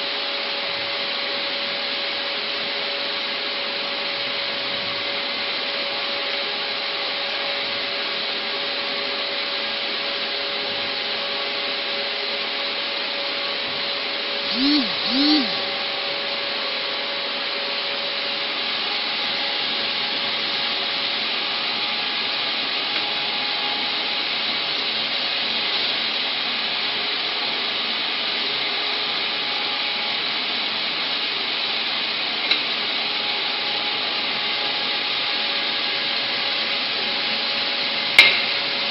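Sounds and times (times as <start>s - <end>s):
machine hissing and humming: 11.1s - 38.9s.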